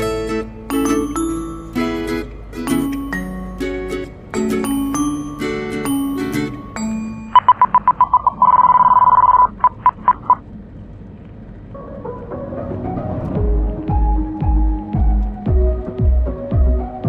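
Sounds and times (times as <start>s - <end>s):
music with chime-like notes: 0.0s - 7.8s
high electronic warning beeps: 6.1s - 10.4s
music with low throbbing notes: 11.8s - 17.0s.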